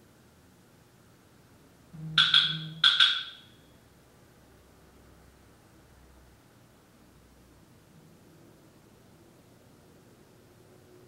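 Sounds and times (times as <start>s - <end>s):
low hum: 1.9s - 3.6s
wood block knocks: 2.0s - 3.5s.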